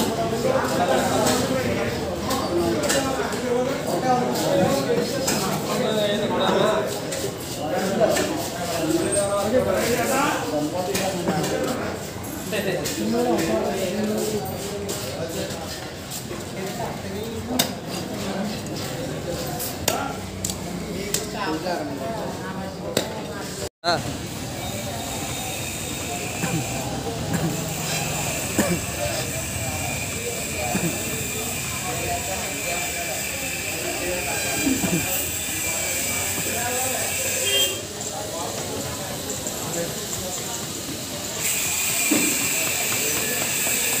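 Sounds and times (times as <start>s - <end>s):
murmur of faint voices: 0.0s - 44.0s
distant voices: 24.0s - 44.0s.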